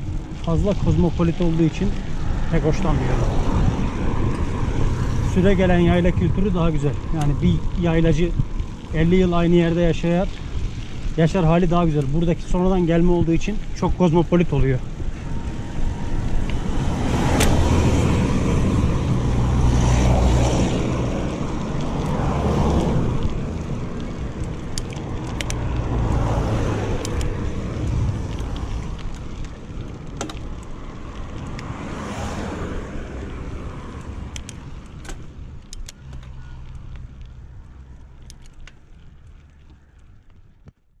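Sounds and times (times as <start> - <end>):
wind buffeting microphone: 0.0 - 39.3
bike tyres rolling on dirt: 0.0 - 41.0.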